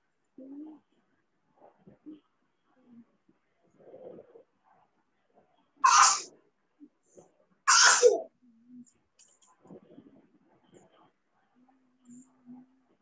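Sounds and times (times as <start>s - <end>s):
person sneezing: 5.8s - 6.3s, 7.7s - 8.2s.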